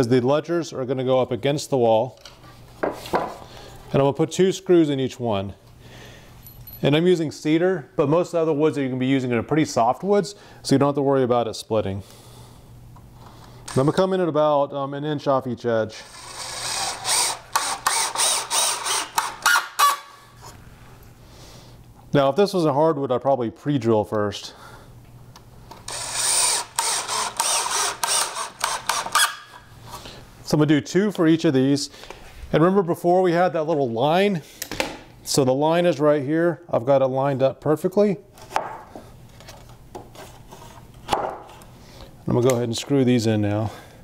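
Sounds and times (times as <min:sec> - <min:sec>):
cordless drill driving screw: 0:13.7 - 0:13.9, 0:16.0 - 0:20.1, 0:25.7 - 0:29.6.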